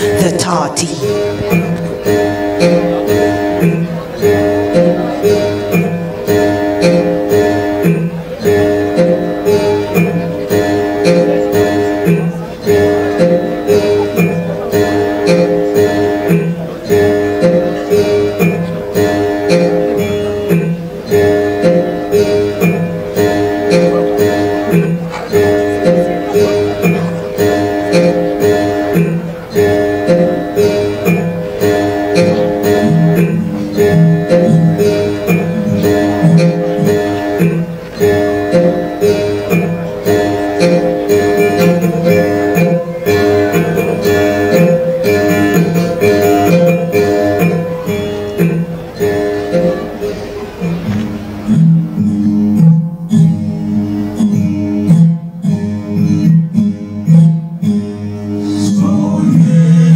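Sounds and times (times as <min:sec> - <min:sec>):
folk ensemble music: 0:00.0 - 0:59.9
one-stringed instrument melody: 0:00.0 - 0:59.9.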